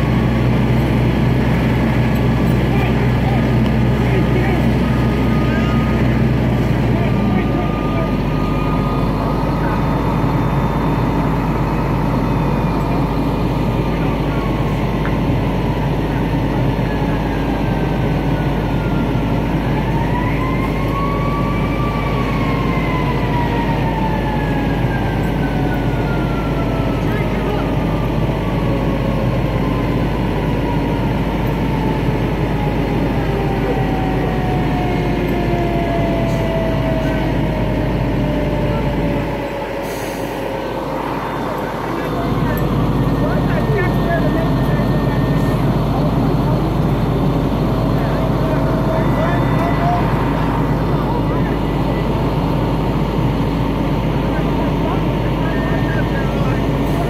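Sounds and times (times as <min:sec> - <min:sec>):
fire engine running: 0:00.0 - 0:57.0
siren wailing: 0:00.1 - 0:57.0.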